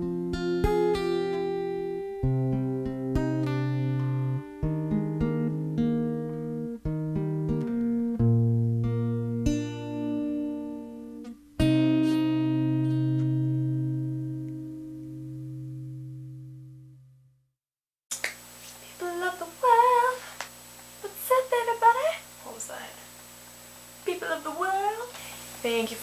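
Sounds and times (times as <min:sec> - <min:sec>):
acoustic guitar chord ringing: 0:00.0 - 0:17.4
woman speaking: 0:21.0 - 0:23.1, 0:24.0 - 0:26.0.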